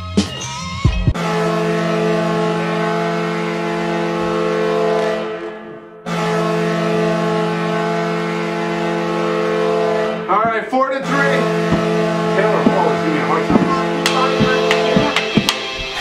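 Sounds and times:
goal horn blasts: 1.2 - 16.0.

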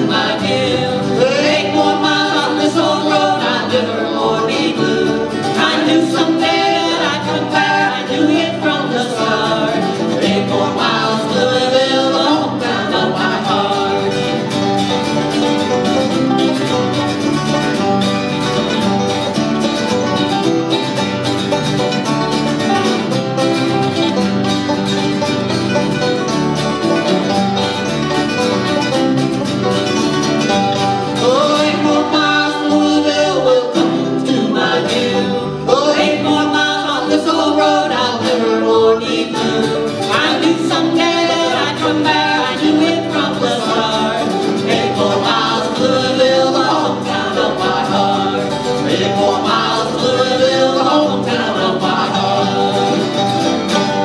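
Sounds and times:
banjo picking: 0.0 - 54.0
bluegrass band playing: 0.0 - 54.0
sliding notes: 0.0 - 54.0.

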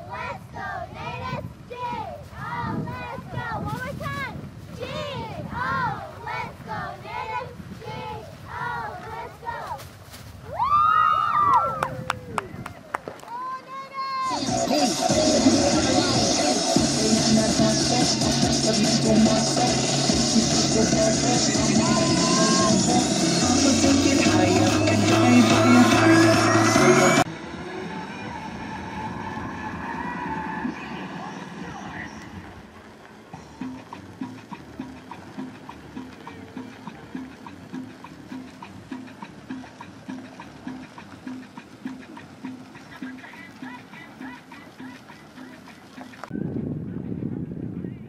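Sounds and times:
voices: 0.0 - 10.0, 11.4 - 46.3
loud music with a beat: 14.2 - 28.9
faint steady beat: 32.9 - 46.2.

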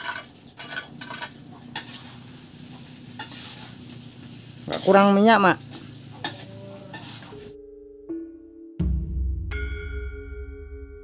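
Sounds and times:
metal spatula scraping pan: 0.0 - 4.0, 5.7 - 7.5
rice sizzling in a wok: 0.0 - 7.6.

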